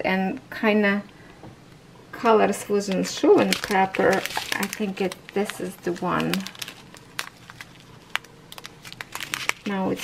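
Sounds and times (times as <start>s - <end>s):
plastic bag crinkling and clicking: 2.9s - 10.0s.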